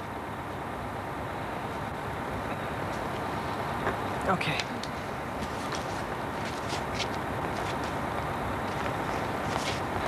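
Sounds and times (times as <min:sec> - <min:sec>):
bus engine idling: 0:00.0 - 0:10.0.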